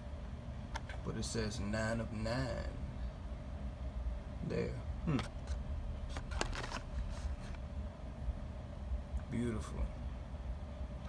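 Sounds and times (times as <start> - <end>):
blister card crinkling: 5.2 - 7.6.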